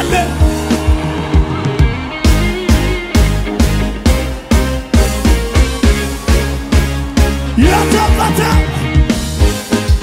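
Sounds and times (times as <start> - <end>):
gospel band playing: 0.0 - 10.0.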